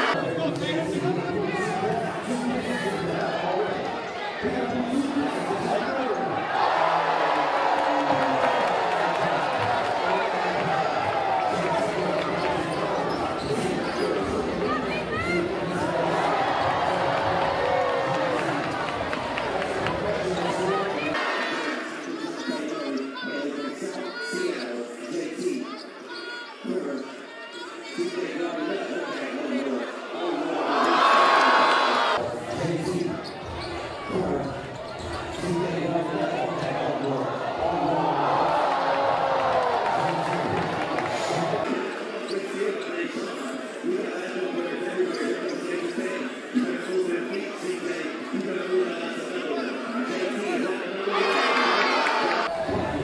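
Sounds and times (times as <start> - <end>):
crowd chatter: 0.0 - 53.0.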